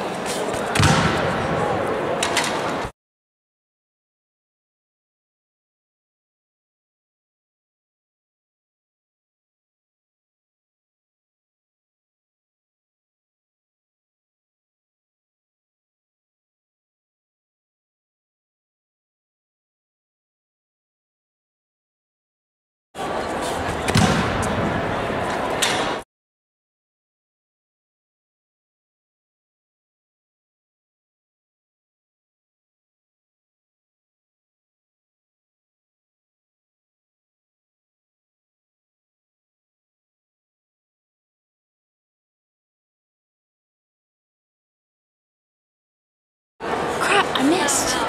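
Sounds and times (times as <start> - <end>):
echoing background chatter: 0.0 - 2.9, 23.0 - 26.0, 46.6 - 48.0
busy indoor hall noise: 0.0 - 3.0, 23.0 - 26.0, 46.6 - 48.0
loud thud: 0.7 - 1.6, 23.8 - 24.8.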